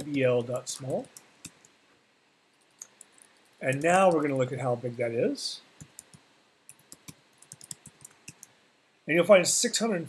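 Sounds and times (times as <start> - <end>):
computer keyboard typing: 2.6 - 4.4, 5.8 - 8.5.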